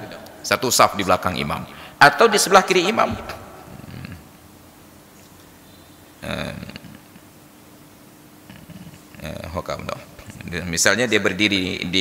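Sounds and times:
man's voice: 0.0s - 3.5s
soft low murmur: 3.2s - 7.4s, 8.4s - 10.7s.

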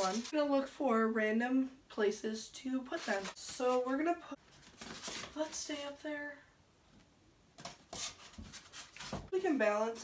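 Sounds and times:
light knocks and scrapes: 7.6s - 9.3s.

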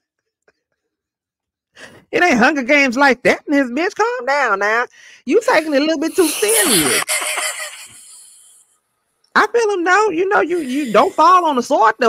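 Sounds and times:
woman laughing: 5.6s - 8.6s, 10.5s - 11.7s.

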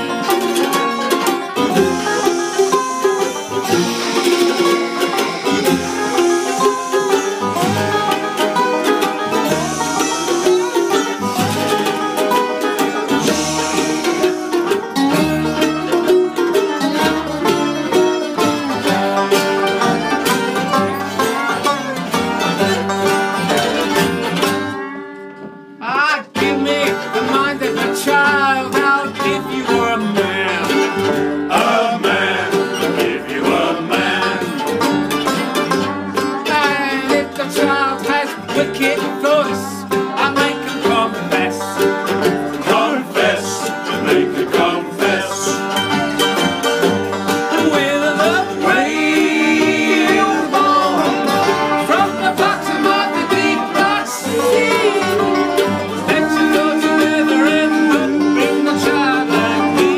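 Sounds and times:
double bass: 0.0s - 25.0s, 26.4s - 59.9s
banjo picking: 0.0s - 59.9s
plucked string instrument: 0.0s - 59.9s.

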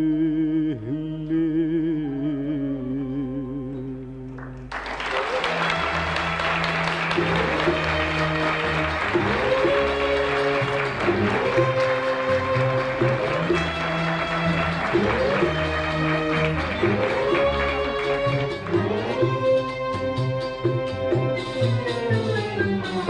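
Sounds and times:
audience applauding: 4.4s - 19.7s
orchestra playing: 5.1s - 23.0s.

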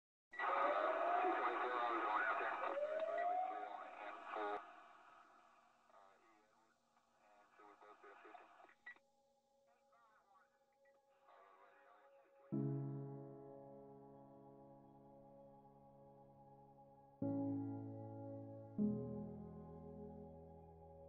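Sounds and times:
rising radio whistles: 0.4s - 4.6s
voices over radio: 0.4s - 5.3s, 5.9s - 8.8s, 11.2s - 12.7s.

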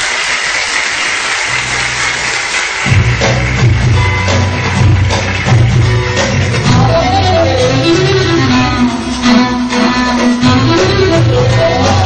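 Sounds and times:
instrumental song with strings: 1.6s - 12.0s
pulsing bass line: 1.6s - 12.0s.

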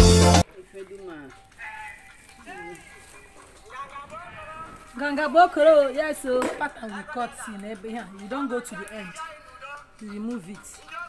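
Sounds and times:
faint background voices: 0.4s - 11.0s.

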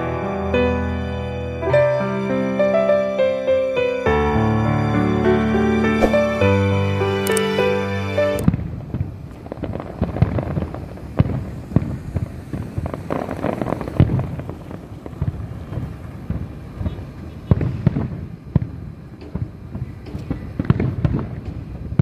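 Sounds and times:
fireworks bangs and crackles: 6.0s - 6.8s, 8.4s - 22.0s.

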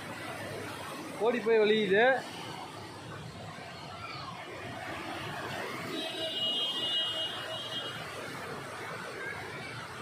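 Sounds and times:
water rushing through spillway: 0.0s - 10.0s.

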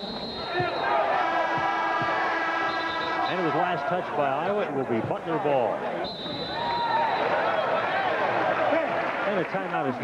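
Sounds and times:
crowd noise: 0.0s - 10.0s
scoreboard horn blast: 1.2s - 3.6s.

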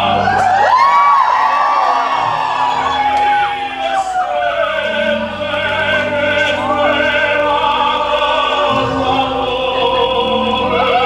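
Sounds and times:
audience whooping and cheering: 0.0s - 5.1s, 10.7s - 11.0s
operatic music: 0.0s - 11.0s.

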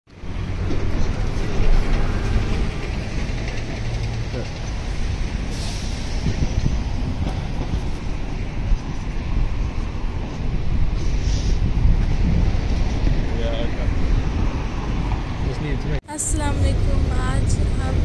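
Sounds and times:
rumble of passing vehicles: 0.1s - 18.0s
brief hiss: 11.0s - 11.6s.

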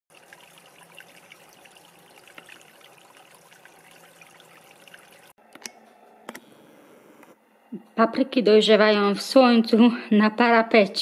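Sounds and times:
stream trickling over stones: 0.1s - 5.4s.

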